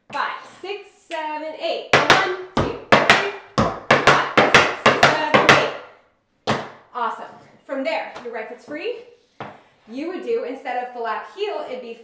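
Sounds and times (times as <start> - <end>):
tap shoes on wooden board: 2.0 - 5.8, 6.5 - 6.8.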